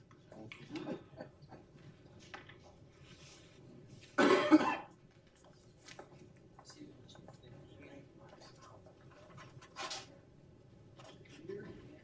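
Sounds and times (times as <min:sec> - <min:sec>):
person coughing: 0:04.2 - 0:04.9.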